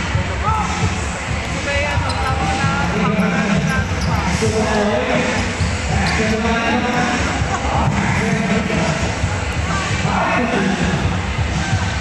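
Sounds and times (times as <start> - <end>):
crowd chatter echoing: 0.0 - 12.0.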